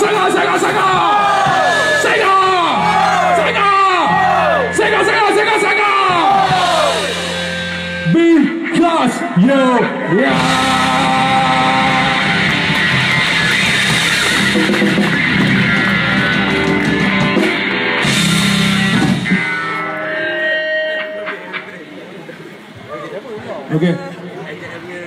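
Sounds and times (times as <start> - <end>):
punk band playing live: 0.0 - 22.9
stray guitar notes: 1.0 - 22.8.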